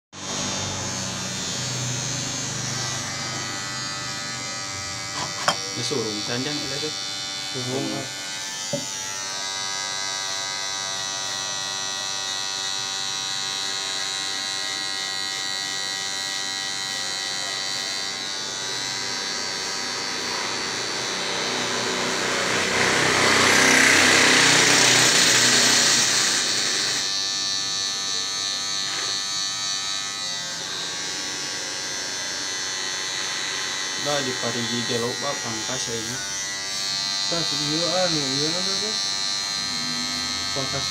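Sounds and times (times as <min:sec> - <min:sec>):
electric hair clipper buzzing: 0:00.2 - 0:40.9.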